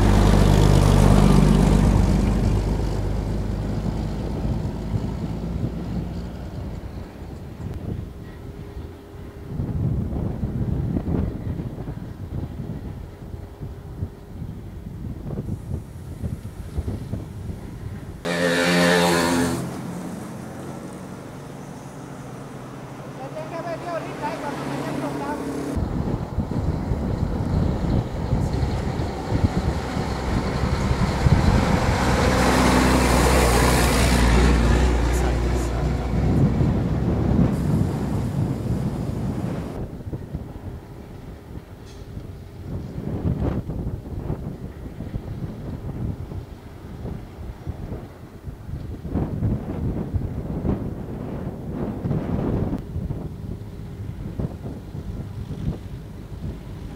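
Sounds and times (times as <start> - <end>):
heavy vehicle passing: 0.0 - 8.0, 15.5 - 40.0
wind buffeting microphone: 0.0 - 56.9.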